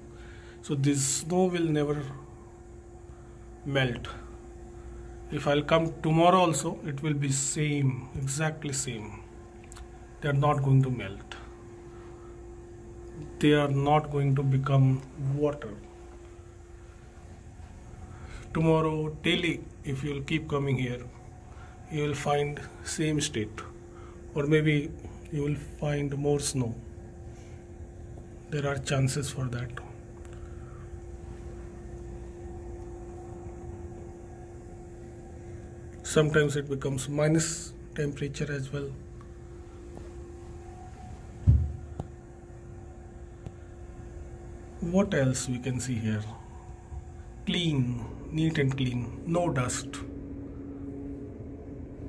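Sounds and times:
thin steady hum: 0.0 - 52.0
dull thump: 41.4 - 42.0
low rumble: 48.0 - 52.0.

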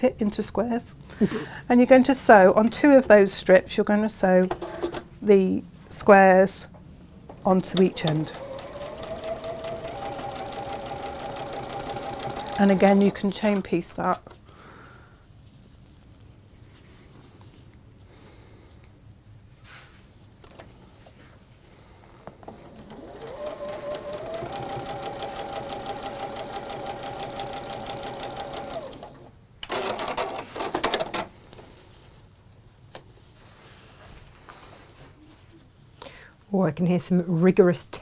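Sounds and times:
sewing machine stitching: 7.6 - 13.7, 22.4 - 31.2.

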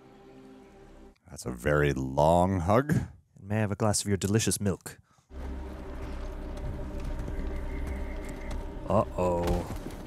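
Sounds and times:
low drone soundtrack music: 0.0 - 1.2, 5.2 - 10.0.

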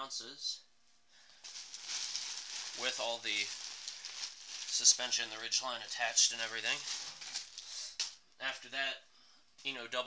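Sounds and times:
plastic bag crinkling: 1.4 - 8.2.

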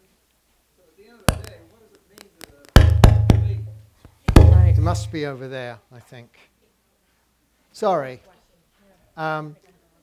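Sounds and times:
microphone handling thumps: 1.3 - 1.6, 2.8 - 5.2
low boom: 4.4 - 5.2.

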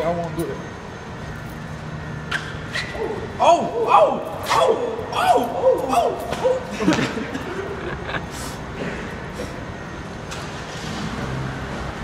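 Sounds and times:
parking garage hum: 0.0 - 12.0.

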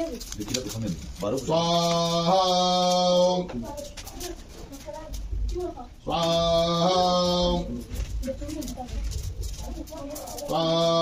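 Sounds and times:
man chanting: 0.7 - 3.7, 6.0 - 8.1, 10.4 - 11.0.

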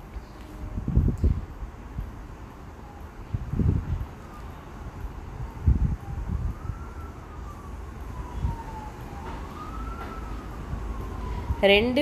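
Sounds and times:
wailing siren: 0.4 - 12.0.

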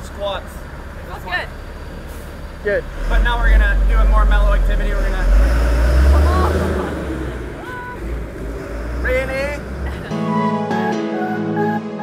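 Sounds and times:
traffic rumble: 0.0 - 10.5.

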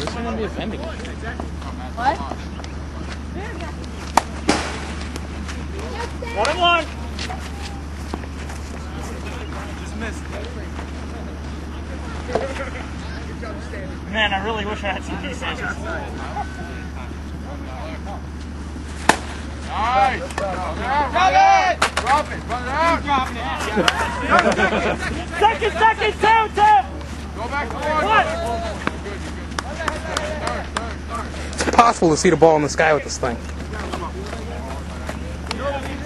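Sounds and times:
players shouting: 0.0 - 18.5, 19.1 - 36.0
baseball bat hitting ball: 4.1 - 5.2, 19.0 - 19.4
baseball smacking into glove: 19.0 - 19.4.

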